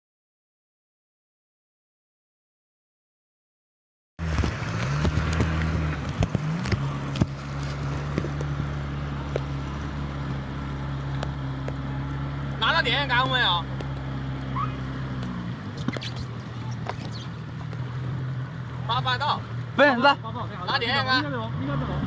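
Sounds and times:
outboard motor running: 4.2s - 18.9s.

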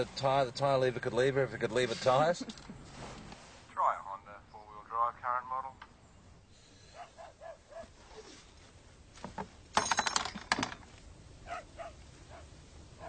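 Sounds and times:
metallic rattling and clinking: 9.7s - 11.0s.

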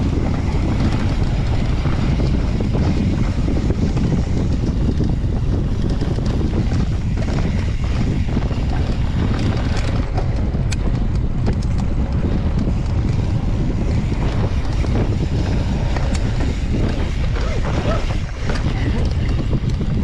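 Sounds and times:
bike clicks and rattles: 0.0s - 20.0s
tyres rumbling on dirt: 0.0s - 20.0s
wind buffeting microphone: 0.0s - 20.0s.

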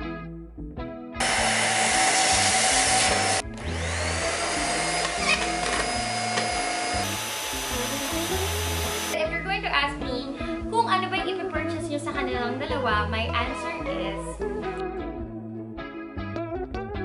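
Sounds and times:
background music: 0.0s - 17.0s
vacuum cleaner motor whine: 1.2s - 9.2s.

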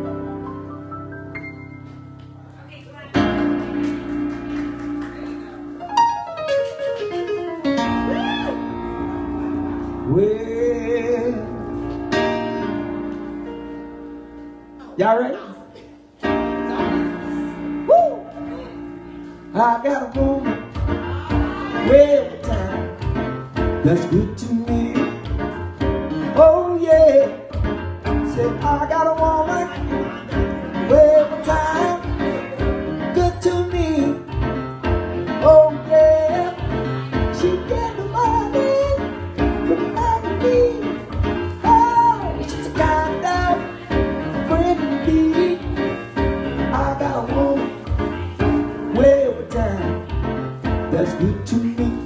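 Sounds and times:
electric keyboard chords: 0.0s - 52.0s
man singing: 10.0s - 12.0s, 19.5s - 25.6s, 26.2s - 34.5s, 35.3s - 52.0s.

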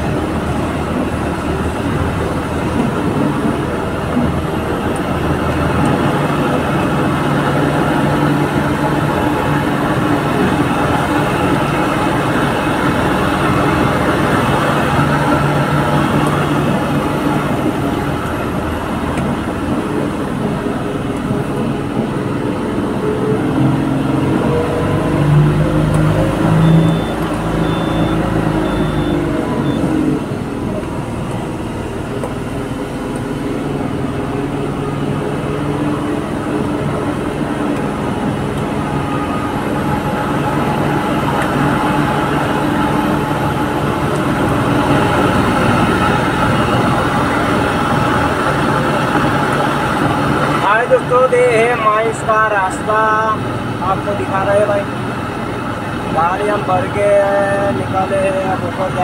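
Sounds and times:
diesel truck engine running: 0.0s - 59.0s
faint short high beeps: 26.6s - 29.9s.

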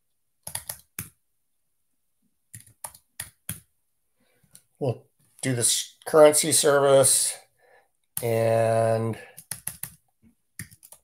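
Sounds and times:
computer keyboard typing: 0.4s - 1.2s, 2.5s - 3.7s, 9.3s - 10.0s, 10.6s - 11.0s.

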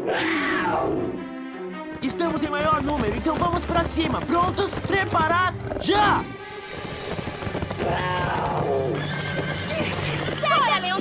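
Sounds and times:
dramatic orchestral music: 0.2s - 11.0s
hoofbeats: 1.7s - 11.0s
horse whinnying: 6.8s - 11.0s.

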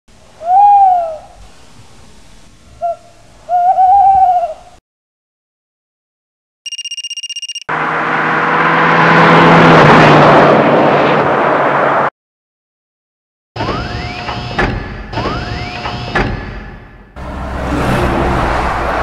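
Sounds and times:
hoot-like calls: 0.4s - 1.4s, 2.8s - 4.8s
rapid electronic beeping: 6.7s - 7.7s
loud rushing roar with low hum: 7.7s - 12.1s, 17.2s - 19.0s.

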